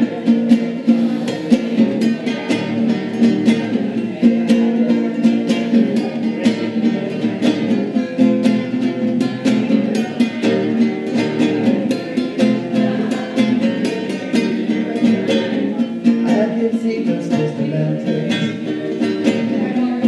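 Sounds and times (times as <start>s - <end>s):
classical guitar strummed fast: 0.0s - 20.0s.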